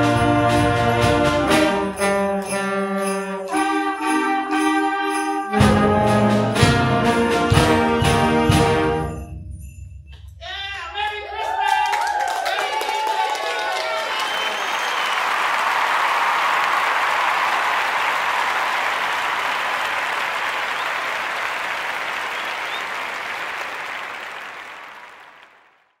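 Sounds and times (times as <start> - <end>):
children applauding: 11.0 - 25.9.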